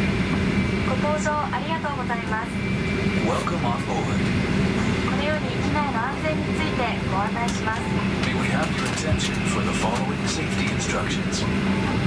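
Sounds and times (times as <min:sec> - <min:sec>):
steady low hum: 0:00.0 - 0:12.0
announcement voice: 0:05.0 - 0:11.6.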